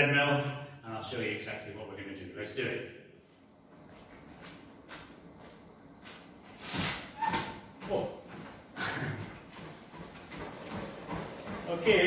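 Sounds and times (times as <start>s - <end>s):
footfalls on treadmill deck: 6.1s - 12.0s.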